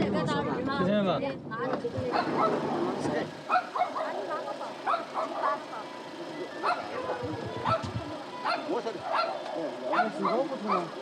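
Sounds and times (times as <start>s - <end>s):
people's voices: 0.0s - 11.0s
dog barking: 2.1s - 2.7s, 3.5s - 5.9s, 6.6s - 11.0s.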